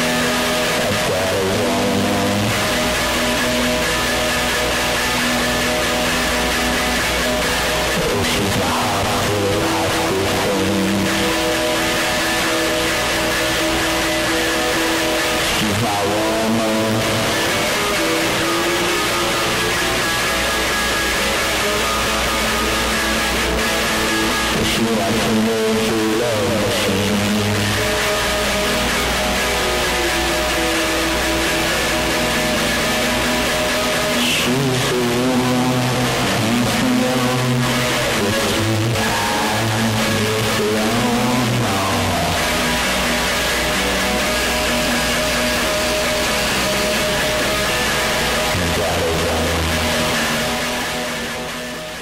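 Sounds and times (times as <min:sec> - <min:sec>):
electric guitar bending notes: 0:00.0 - 0:52.0
low bass notes: 0:00.0 - 0:52.0.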